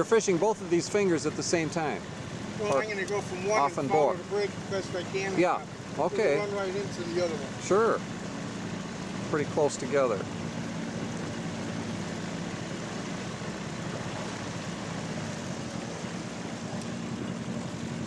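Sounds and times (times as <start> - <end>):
outboard motor humming: 0.0 - 18.0
water wash: 0.0 - 18.0.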